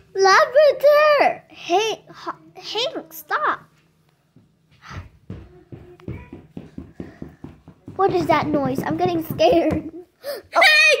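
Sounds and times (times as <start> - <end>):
light taps as pretend footsteps: 3.8 - 10.0.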